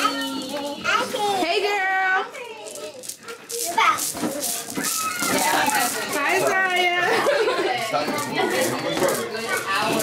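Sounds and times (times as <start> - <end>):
young children playing and chattering: 0.0 - 10.0.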